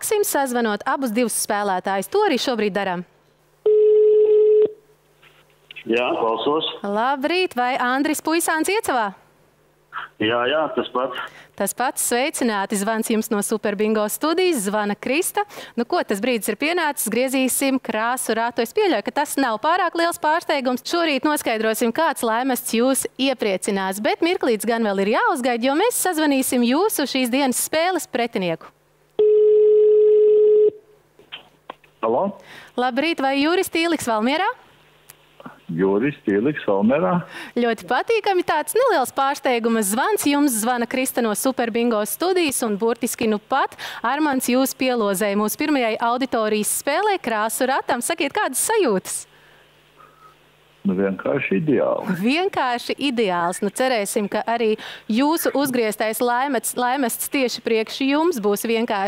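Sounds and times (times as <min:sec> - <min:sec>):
telephone ringback beep: 0:03.7 - 0:04.8, 0:29.2 - 0:30.8.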